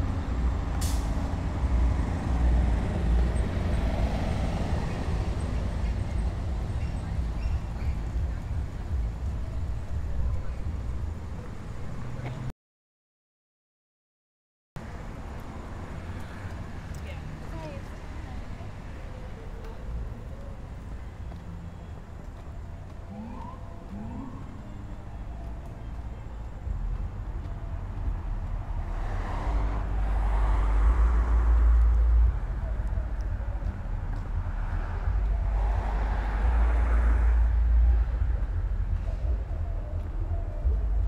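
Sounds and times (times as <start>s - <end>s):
road traffic rumble: 0.0s - 12.5s, 14.8s - 41.0s
vehicles passing: 0.0s - 12.5s, 14.8s - 41.0s.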